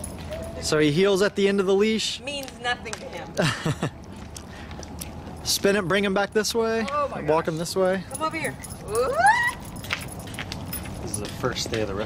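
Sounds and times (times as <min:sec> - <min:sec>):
light clicks and jingles: 0:00.0 - 0:01.7, 0:04.0 - 0:12.0
woman exclaiming ooh: 0:08.9 - 0:09.7.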